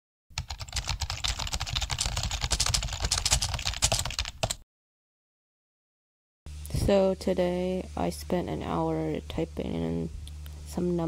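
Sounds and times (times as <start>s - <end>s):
fast typing on computer keyboard: 0.4s - 4.6s.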